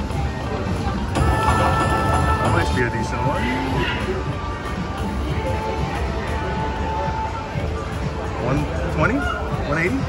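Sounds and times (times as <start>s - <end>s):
slot machine electronic music: 1.0s - 3.8s
slot machine chimes: 1.2s - 3.8s.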